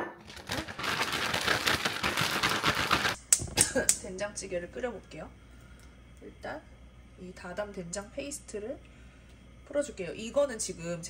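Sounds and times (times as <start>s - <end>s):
plastic bag rustling: 0.2s - 3.2s.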